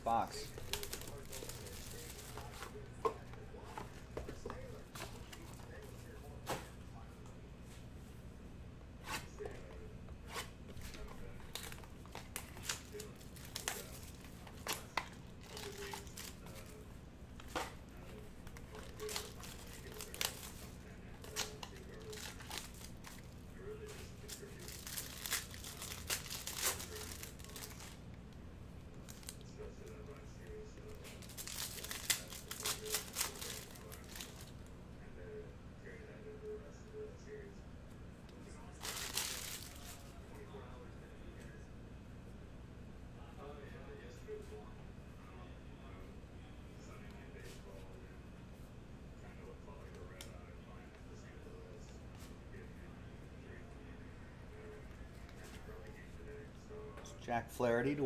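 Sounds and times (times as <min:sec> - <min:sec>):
plastic wrapping crinkling: 0:00.4 - 0:02.6, 0:10.9 - 0:16.8, 0:18.5 - 0:23.2, 0:24.2 - 0:28.0, 0:31.0 - 0:34.6, 0:38.7 - 0:40.0.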